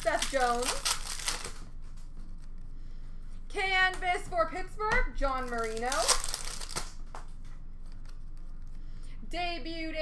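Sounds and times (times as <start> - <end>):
foil wrapper crinkling and tearing: 0.0 - 1.6, 5.4 - 7.0
cards rustling in hands: 0.0 - 2.7, 5.3 - 9.0.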